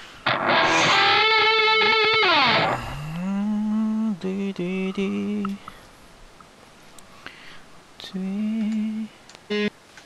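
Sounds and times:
distorted electric guitar note: 0.2 - 3.3.

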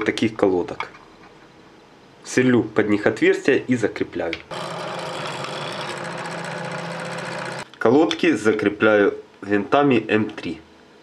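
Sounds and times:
drill press drilling plastic: 4.5 - 7.6.

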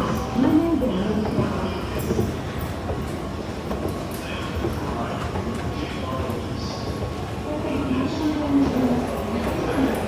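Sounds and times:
railway station noise: 0.0 - 10.0.

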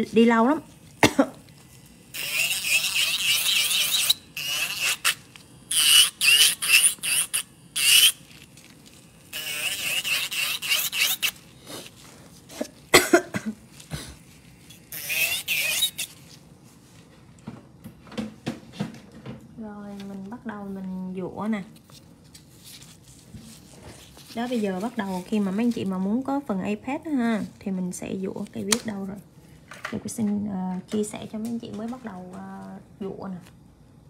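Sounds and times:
nail drill grinding whine: 2.1 - 8.2, 9.2 - 11.4, 14.9 - 16.2.

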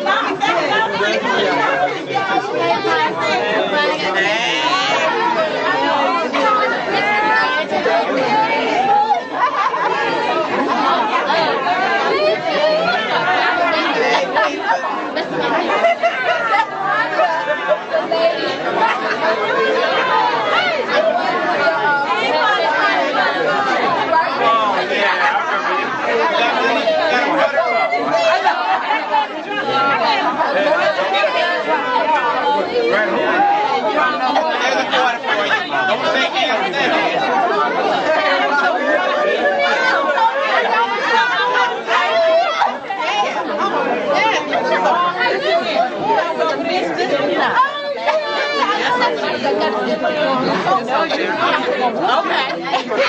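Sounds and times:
chatter of many people: 0.0 - 53.0.

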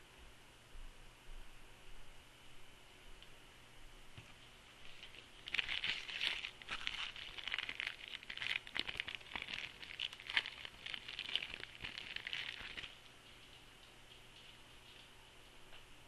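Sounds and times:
plastic wrapper crinkling and tearing: 4.8 - 13.1.

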